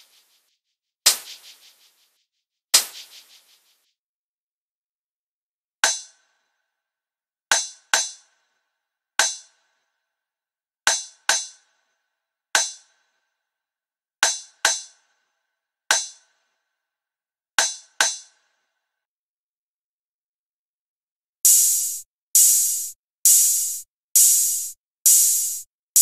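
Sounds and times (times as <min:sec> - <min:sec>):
drum hit with metallic ring: 0:21.5 - 0:26.0.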